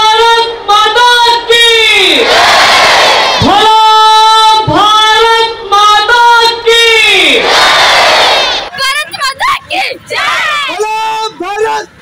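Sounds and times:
crowd mass shout: 0.0s - 5.2s, 6.1s - 8.7s, 10.0s - 11.8s.

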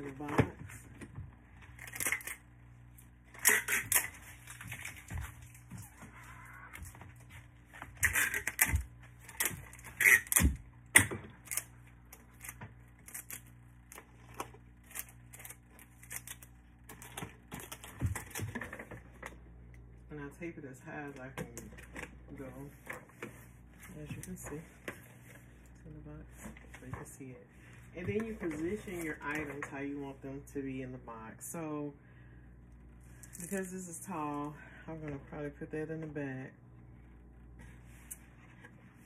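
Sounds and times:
adhesive tape pulled and torn: 8.0s - 16.5s.

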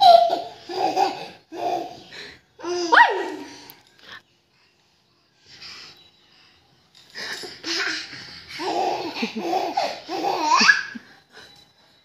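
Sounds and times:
young children laughing: 7.6s - 11.2s.

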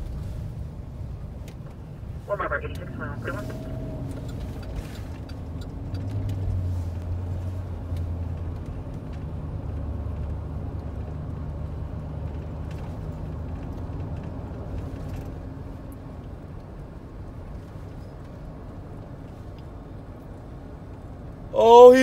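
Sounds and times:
car engine and road noise: 0.0s - 22.0s.

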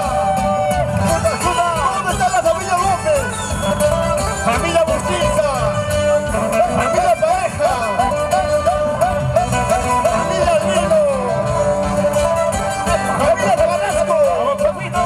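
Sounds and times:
string band with acoustic guitars: 0.0s - 15.0s.

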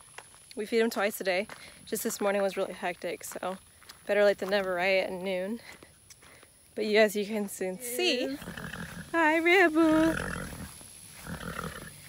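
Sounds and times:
horse nickering low: 8.2s - 9.2s, 9.8s - 12.0s.

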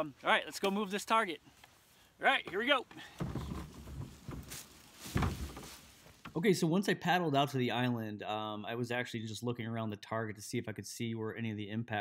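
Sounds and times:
dull knocks of kayak: 2.5s - 6.4s
rustling dry leaves: 3.4s - 6.4s.

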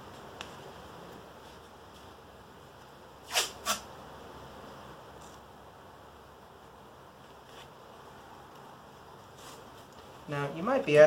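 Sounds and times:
cloth tape ripping: 3.2s - 3.9s.

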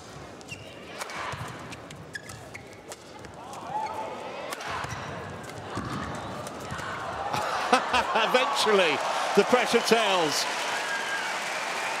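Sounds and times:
shoes squeaking on court: 0.1s - 4.1s.

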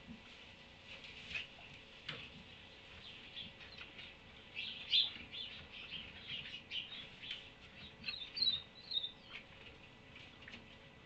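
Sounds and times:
faint steady hum: 0.0s - 11.0s
small animal chirping and squeaking: 3.0s - 9.5s.

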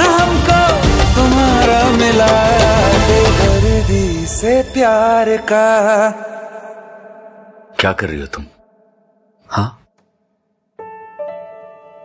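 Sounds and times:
person speaking: 9.4s - 9.9s.

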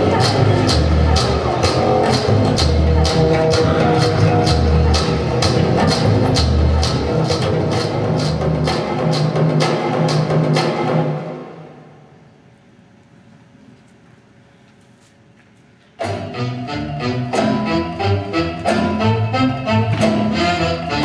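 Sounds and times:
music with percussive beat: 0.0s - 11.4s, 16.0s - 21.0s.

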